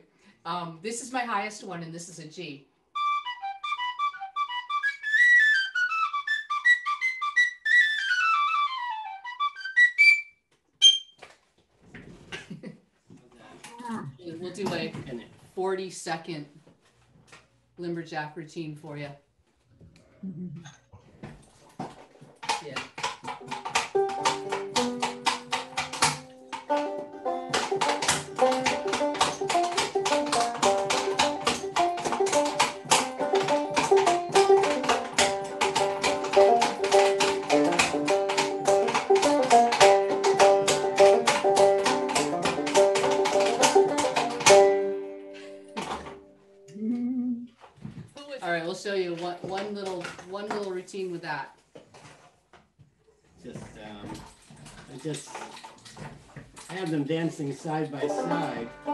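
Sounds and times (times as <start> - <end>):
wooden doll feet clattering: 21.6 - 44.8
banjo tune: 22.4 - 46.6, 55.4 - 58.9.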